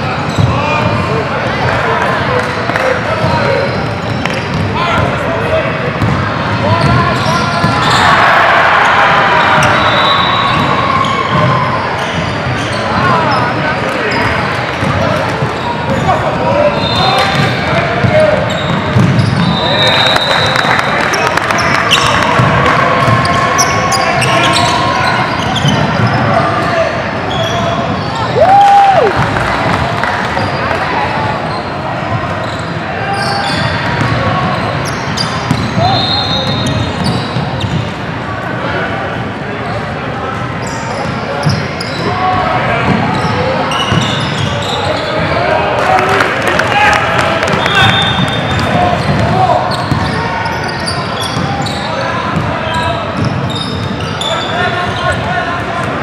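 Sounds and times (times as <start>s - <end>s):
players and spectators calling out: 0.0s - 56.0s
sneakers squeaking: 0.2s - 1.1s, 3.1s - 5.3s, 5.9s - 28.4s, 29.1s - 38.1s, 40.4s - 45.5s, 47.5s - 56.0s.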